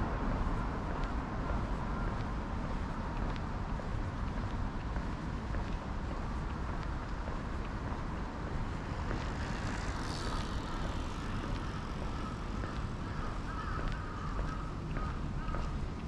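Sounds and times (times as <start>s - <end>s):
faint footsteps on pavement: 0.0s - 16.0s
low outdoor rumble: 0.0s - 16.0s.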